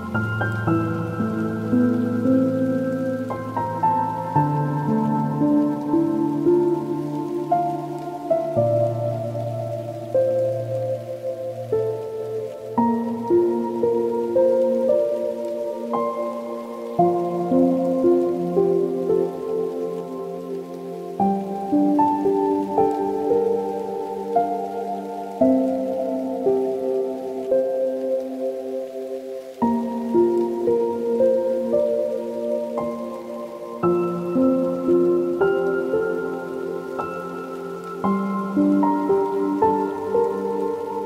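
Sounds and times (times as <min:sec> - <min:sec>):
soft slow solo piano: 0:00.0 - 0:41.0.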